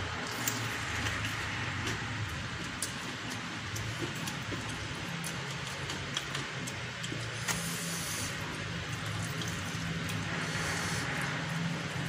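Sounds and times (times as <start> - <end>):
fingers mixing noodles: 0.0 - 12.0.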